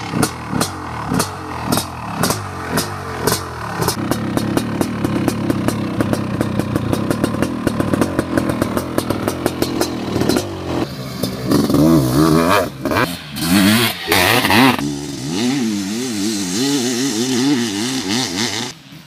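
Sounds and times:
two-stroke motorcycle engine: 0.0s - 19.0s.

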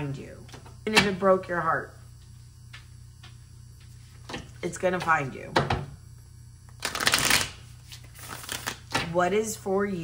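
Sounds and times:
cards being shuffled: 6.8s - 9.0s.

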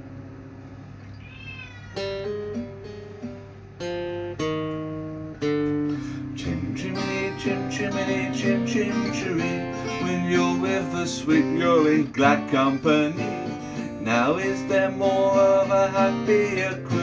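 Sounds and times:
cat meowing: 1.1s - 2.5s
acoustic guitar strumming chords: 2.0s - 17.0s.

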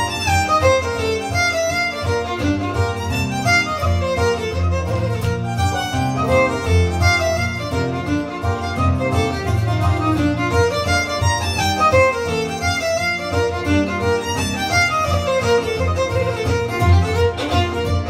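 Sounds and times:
fiddle playing fast reel: 0.0s - 18.0s.

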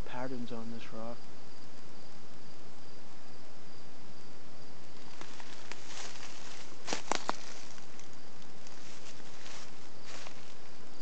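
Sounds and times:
insects chirping: 0.0s - 11.0s
dry leaves rustling and crackling: 4.9s - 10.7s.

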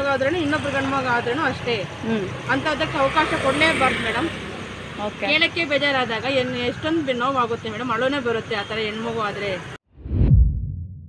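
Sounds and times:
woman speaking: 0.0s - 4.4s, 5.0s - 9.8s.

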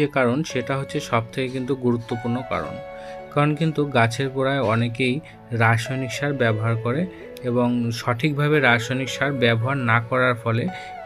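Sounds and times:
person speaking: 0.0s - 10.8s
soft background music: 0.0s - 11.0s.

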